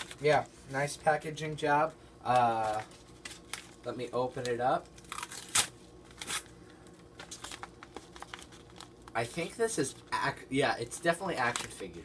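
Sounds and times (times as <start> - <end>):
paper crinkling: 2.3 - 10.3
paper mailer tearing: 5.0 - 6.5.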